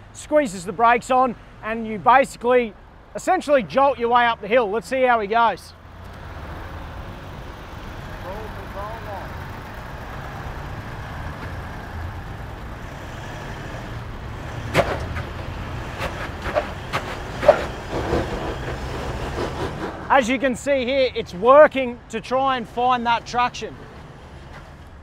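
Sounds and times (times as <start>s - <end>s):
truck engine running low: 5.9s - 20.2s.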